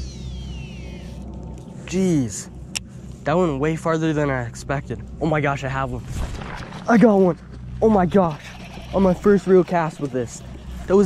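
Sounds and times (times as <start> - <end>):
fishing reel spool whine: 0.0 - 1.7, 8.0 - 11.0.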